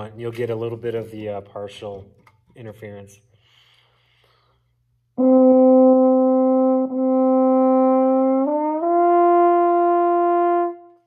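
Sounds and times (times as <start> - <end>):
french horn playing: 5.2 - 11.0.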